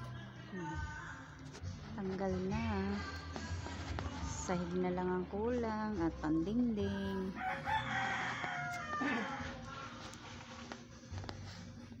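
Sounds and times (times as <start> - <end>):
rooster crowing: 7.4 - 9.6.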